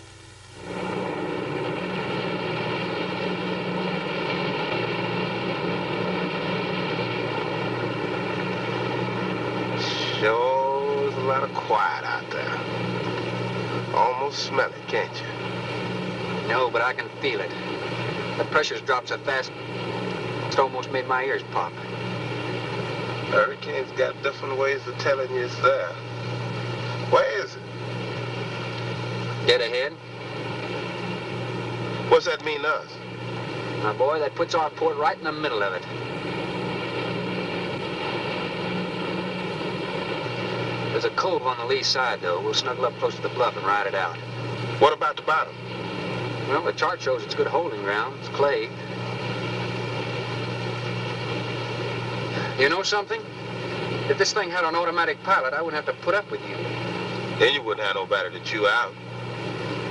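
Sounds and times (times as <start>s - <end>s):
boat engines droning: 0.0s - 59.9s
men talking: 9.8s - 13.0s, 13.7s - 15.5s, 16.4s - 19.5s, 20.4s - 22.0s, 23.2s - 26.1s, 26.9s - 27.7s, 29.4s - 30.0s, 32.0s - 33.0s, 33.8s - 36.0s, 40.9s - 45.6s, 46.4s - 49.0s, 52.3s - 53.3s, 54.0s - 59.0s.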